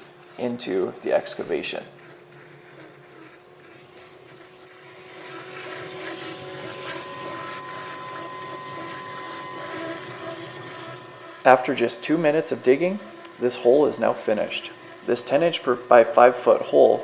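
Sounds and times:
vacuum sucking slurry: 0.0 - 17.0.

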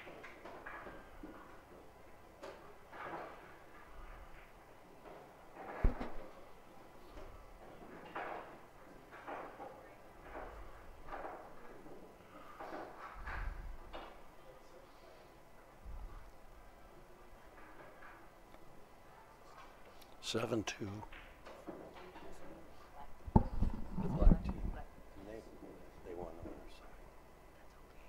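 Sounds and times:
faint murmur: 6.2 - 21.1.

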